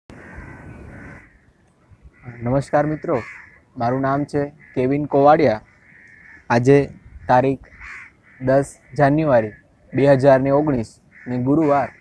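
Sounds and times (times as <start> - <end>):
bird calling: 0.1 - 12.0.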